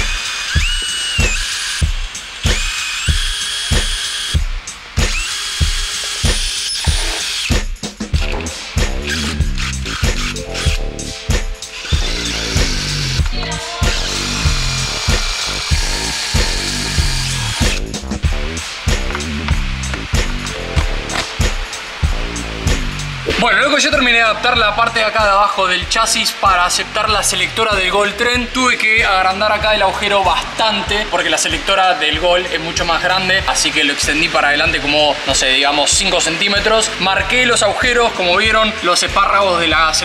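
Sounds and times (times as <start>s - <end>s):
cordless drill whining: 0.0s - 4.4s, 5.1s - 7.6s, 9.1s - 10.8s, 11.7s - 17.8s
background music with beat: 0.0s - 40.0s.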